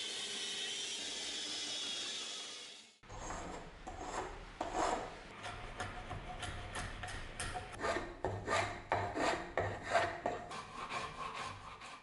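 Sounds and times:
steel tool scraping wood: 3.1s - 12.0s.

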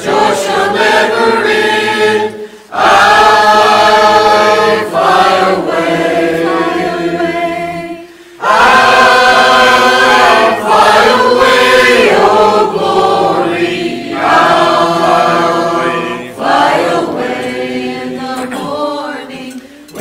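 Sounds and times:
mixed choir singing a hymn: 0.0s - 20.0s.

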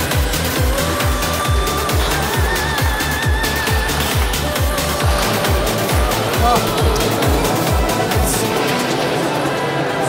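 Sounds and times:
kick drum beat: 0.2s - 8.4s
held synthesizer notes: 4.6s - 9.4s.

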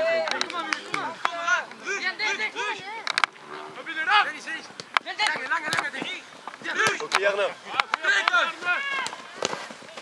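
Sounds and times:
young players calling out: 0.0s - 3.0s.

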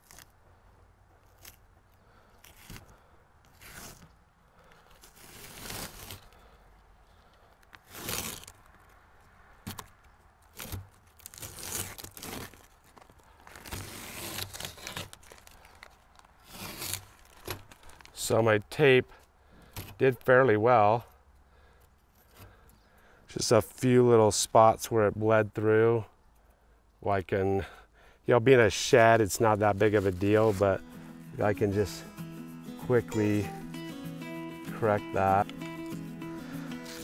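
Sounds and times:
masking tape tearing: 0.0s - 0.3s, 1.2s - 1.7s, 2.4s - 6.6s, 7.6s - 9.0s, 9.6s - 18.2s, 29.4s - 37.0s
paper crumpling and rustling: 4.8s - 6.4s, 10.5s - 18.2s, 29.2s - 32.0s, 34.7s - 37.0s.

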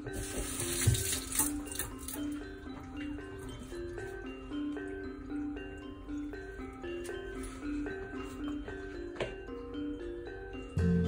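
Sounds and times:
mallet percussion music: 0.0s - 11.0s.

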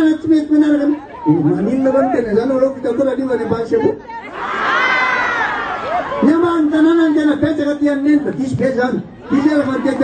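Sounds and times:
crowd cheering and shouting: 4.1s - 10.0s.

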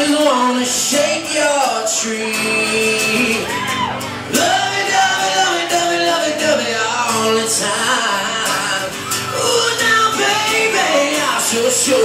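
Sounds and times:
acoustic guitars strumming: 0.0s - 12.0s
man singing: 0.0s - 12.0s.

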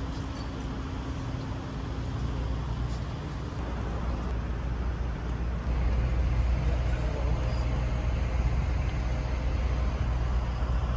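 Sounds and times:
road traffic rumble: 0.0s - 10.9s.

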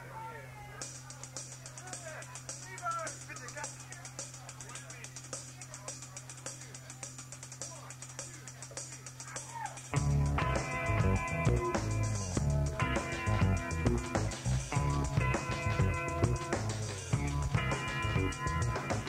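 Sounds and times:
scattered voices: 0.0s - 19.0s
ticking on cymbals: 0.8s - 19.0s
rock band playing loudly: 8.0s - 19.0s
amplifier hum: 10.0s - 19.0s.

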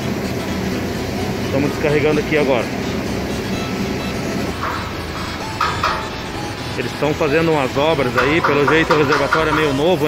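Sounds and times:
diesel truck engine running: 0.0s - 10.0s.

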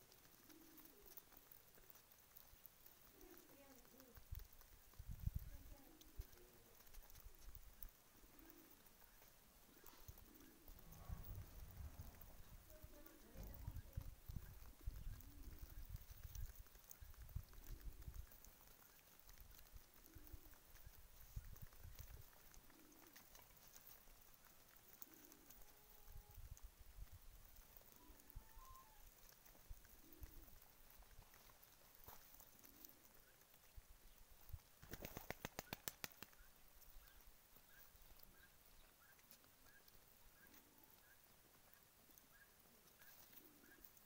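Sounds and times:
pigeons cooing: 0.0s - 44.0s
low rumbles: 10.7s - 14.2s
quick run of clicks or flaps: 34.8s - 36.4s.

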